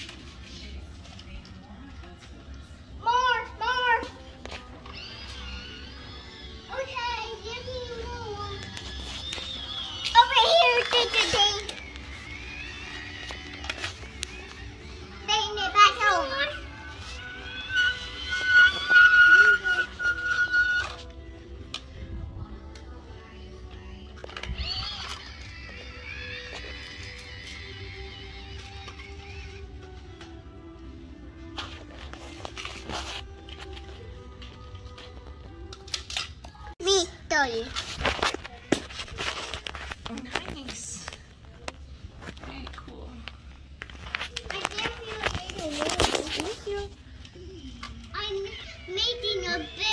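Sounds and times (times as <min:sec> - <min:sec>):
music: 0:00.0 - 0:49.9
held high tone: 0:16.0 - 0:21.1.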